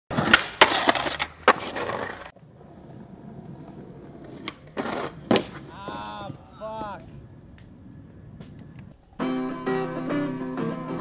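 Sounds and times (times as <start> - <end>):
skateboard cracking on ground: 0.1 - 6.2
skateboard rolling on hard ground: 0.1 - 6.4.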